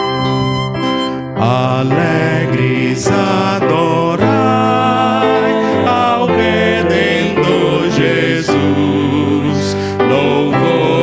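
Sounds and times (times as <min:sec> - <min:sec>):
violin: 0:00.0 - 0:02.4
keyboard: 0:00.0 - 0:11.0
man singing a hymn: 0:01.4 - 0:11.0.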